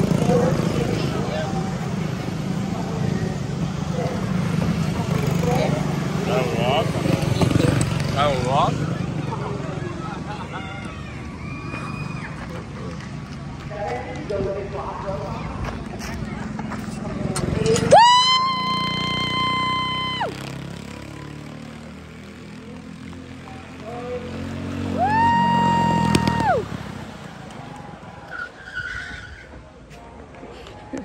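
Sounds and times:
small engines running low: 16.2s - 28.0s.

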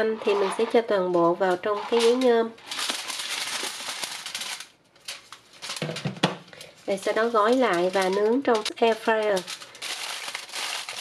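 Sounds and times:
spices rustling onto foil: 1.8s - 11.0s.

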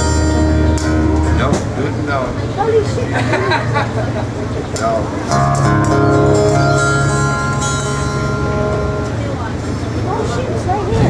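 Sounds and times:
acoustic band chord ringing: 0.0s - 2.1s, 4.8s - 10.1s
voices: 0.0s - 11.0s.

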